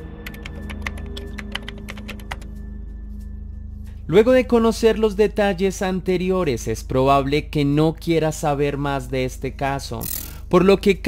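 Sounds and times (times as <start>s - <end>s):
low music drone: 0.0s - 8.8s
keyboard typing clicks: 0.2s - 2.5s, 10.0s - 10.4s.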